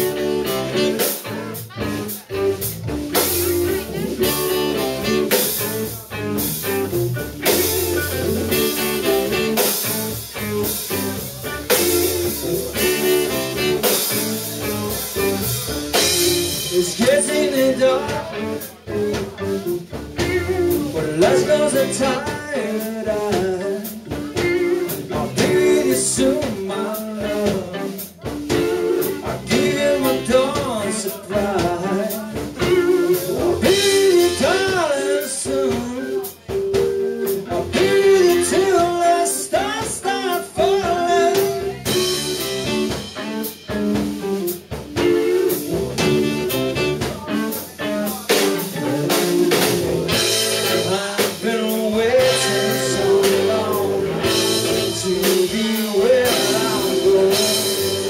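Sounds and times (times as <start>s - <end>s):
pitch-bending lead melody: 0.0s - 22.7s, 40.2s - 58.0s
live blues band playing: 0.0s - 58.0s.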